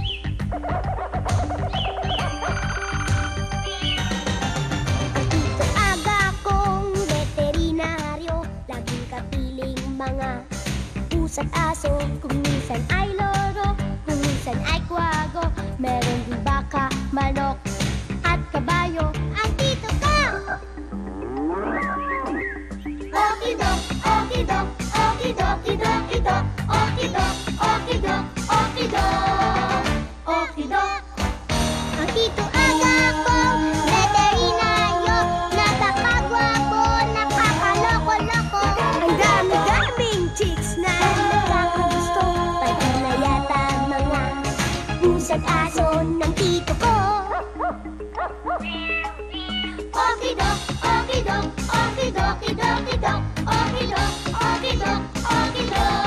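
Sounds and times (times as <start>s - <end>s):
bouncy tv theme music: 0.0s - 56.0s
cow mooing: 21.0s - 22.3s.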